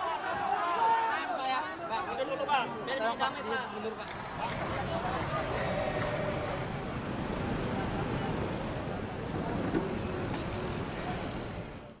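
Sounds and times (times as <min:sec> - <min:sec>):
low street rumble: 0:04.0 - 0:12.0.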